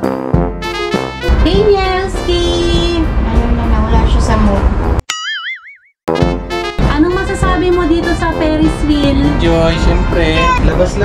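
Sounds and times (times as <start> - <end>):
background music: 0.0 - 5.0, 6.1 - 11.0
cartoon boing sound effect: 5.1 - 6.4.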